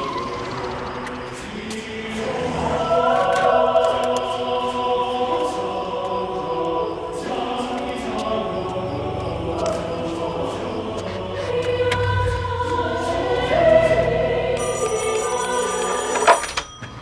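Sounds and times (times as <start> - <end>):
choir singing sustained chords: 0.0 - 16.4.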